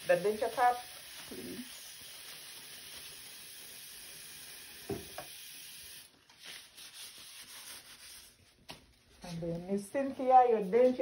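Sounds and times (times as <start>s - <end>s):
tap water running into sink: 0.0s - 6.1s
knock: 4.9s - 5.2s
paper towel rubbing and rustling: 6.3s - 9.5s.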